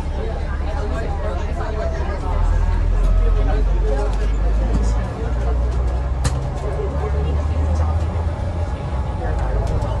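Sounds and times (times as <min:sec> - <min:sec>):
bus cabin rumble: 0:00.0 - 0:10.0.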